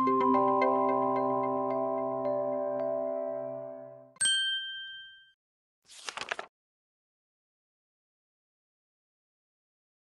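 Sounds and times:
bright ding chime: 0:04.2 - 0:05.4.

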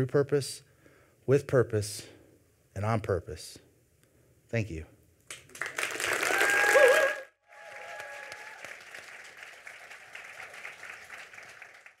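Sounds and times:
audience applauding: 0:05.3 - 0:12.0.

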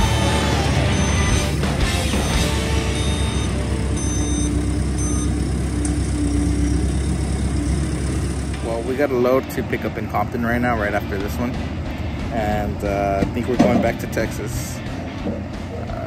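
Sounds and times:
reversing alarm beeping: 0:00.0 - 0:08.5
diesel engine rumbling: 0:00.0 - 0:16.0.

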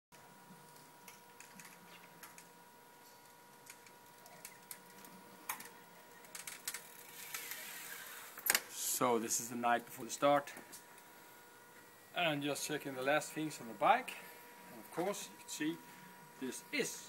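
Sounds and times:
faint steady hum: 0:00.1 - 0:17.0
bicycle clicks and ticks: 0:03.2 - 0:08.6.

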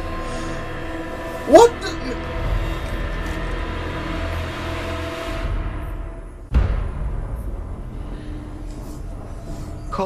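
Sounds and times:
dramatic score held tones: 0:00.0 - 0:10.0
deep rumble: 0:02.1 - 0:10.0.

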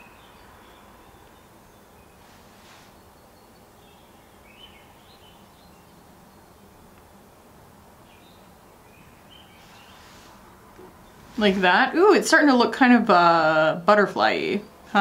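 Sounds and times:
low steady hiss: 0:00.0 - 0:15.0
faint bird chirps: 0:08.0 - 0:11.4.

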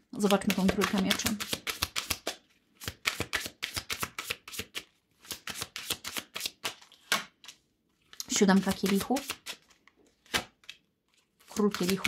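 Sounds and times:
cards shuffling: 0:00.2 - 0:12.0.

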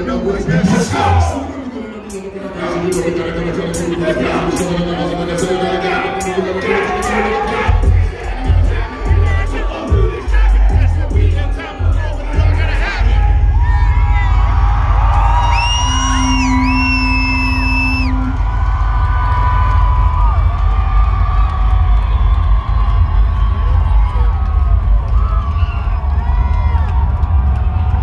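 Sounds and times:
live hip-hop music with deep bass: 0:00.0 - 0:28.0
crowd whooping and cheering: 0:03.7 - 0:28.0
high held tones: 0:15.4 - 0:18.8.

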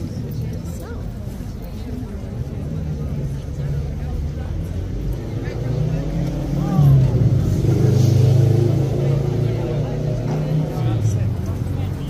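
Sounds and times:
faint voices: 0:00.0 - 0:12.0
vehicle engine rumbling: 0:00.0 - 0:12.0.

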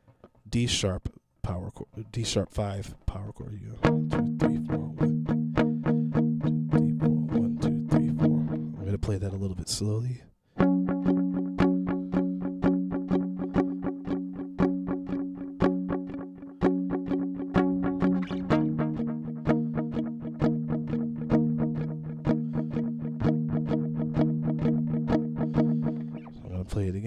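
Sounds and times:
electric guitar power chord strumming: 0:03.8 - 0:09.0, 0:10.6 - 0:26.5.

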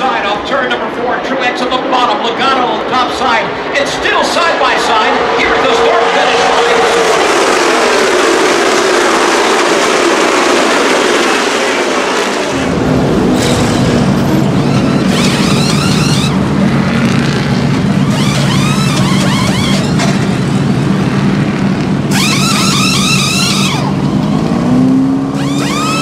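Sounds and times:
race car engines passing: 0:00.0 - 0:26.0.

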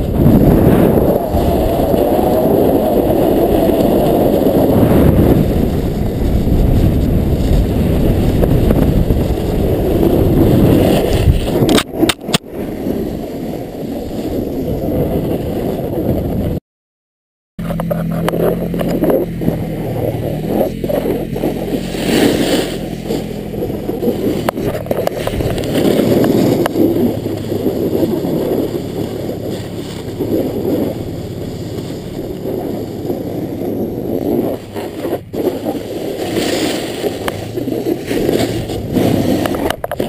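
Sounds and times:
snowboard sliding over snow: 0:00.0 - 0:16.6, 0:17.6 - 0:40.0
wind on microphone: 0:00.0 - 0:16.6, 0:17.6 - 0:40.0.

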